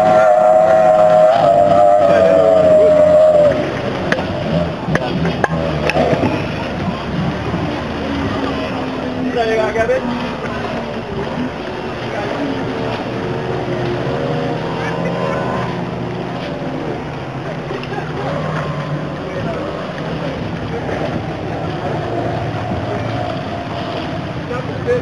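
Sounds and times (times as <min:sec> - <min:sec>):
distant speedboat engines droning: 0:00.0 - 0:25.0.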